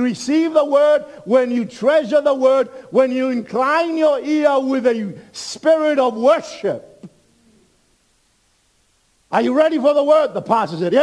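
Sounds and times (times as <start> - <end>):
man speaking: 0.0 - 7.0, 9.3 - 11.0
faint low hum: 0.0 - 11.0.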